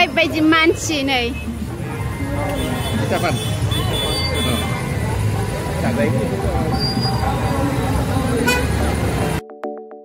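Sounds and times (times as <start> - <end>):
crowd and traffic: 0.0 - 9.4
horn toot: 8.4 - 8.8.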